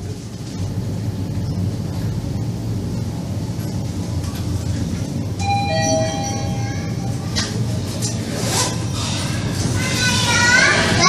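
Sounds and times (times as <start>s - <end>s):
low steady elevator hum: 0.0s - 11.0s
elevator doors opening: 3.1s - 11.0s
children calling and chattering: 5.9s - 11.0s.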